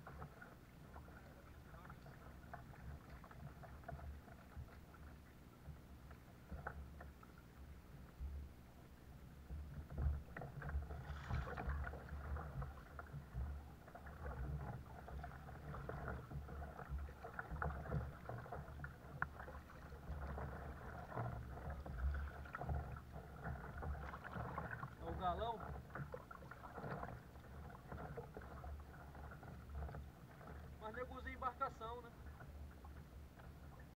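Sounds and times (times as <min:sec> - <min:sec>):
paddle strokes in water: 0:00.0 - 0:33.9
water slapping against hull: 0:00.0 - 0:33.9.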